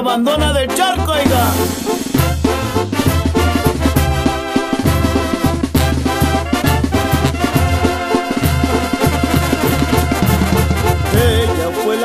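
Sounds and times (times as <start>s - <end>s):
brass band music: 0.0s - 12.0s.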